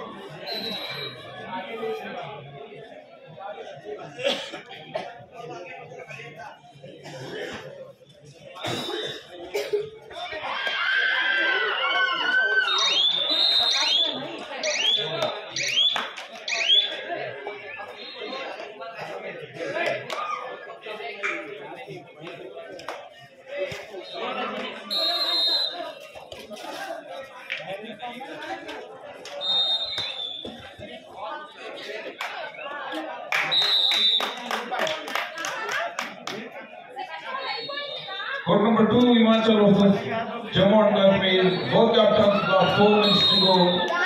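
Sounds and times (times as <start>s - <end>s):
crowd voices and chatter: 0.0s - 44.0s
referee's whistle blasts: 0.4s - 1.4s, 12.6s - 17.0s, 24.0s - 25.9s, 29.4s - 30.7s, 33.4s - 34.4s, 37.4s - 38.2s, 42.6s - 43.9s
hand clapping: 15.2s - 16.4s, 33.3s - 36.4s.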